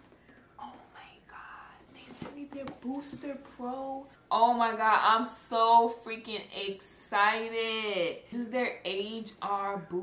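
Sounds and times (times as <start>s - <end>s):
woman whispering: 0.6s - 2.6s.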